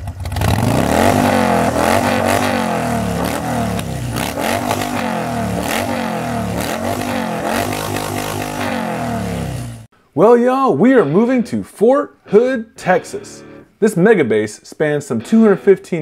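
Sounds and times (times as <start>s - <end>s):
motorcycle engine revving: 0.0s - 9.9s.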